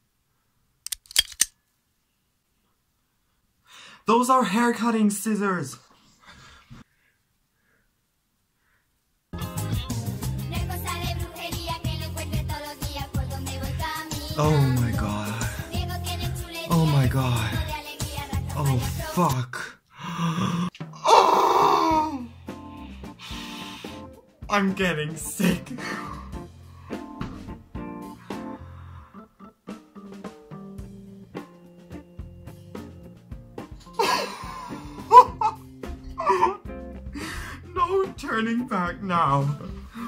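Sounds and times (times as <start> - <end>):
scissors snipping hair: 0.9 - 1.5
woman's high cry: 21.0 - 22.3
woman gasping: 28.2 - 29.3, 34.0 - 35.3, 36.2 - 37.7, 39.7 - 40.0.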